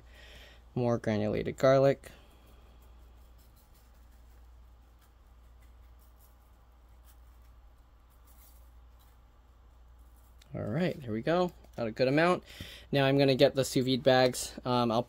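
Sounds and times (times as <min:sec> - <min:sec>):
low steady hum: 0:00.0 - 0:15.0
shaker jar ticks and scratches: 0:02.3 - 0:12.3.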